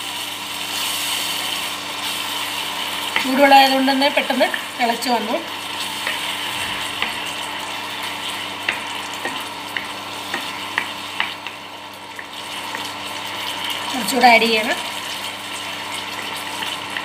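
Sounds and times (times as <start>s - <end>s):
gravy sizzling in a pan: 0.0s - 17.0s
spatula knocking on pan: 8.6s - 11.6s.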